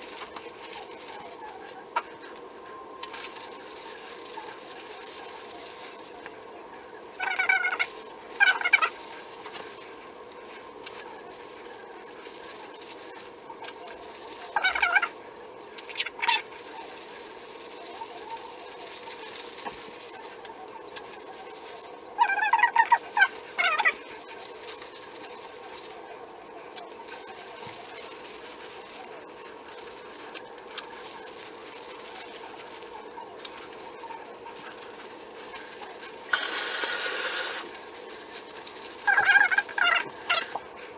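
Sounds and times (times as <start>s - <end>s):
steady hum: 0.0s - 40.9s
wavering animal calls: 6.8s - 9.6s, 10.9s - 37.8s, 38.9s - 40.9s.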